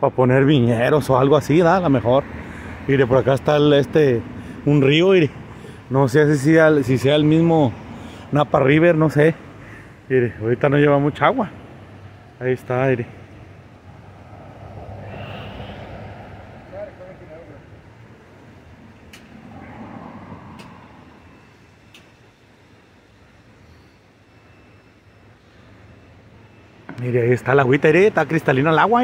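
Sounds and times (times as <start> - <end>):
vehicles passing: 0.0 - 29.0.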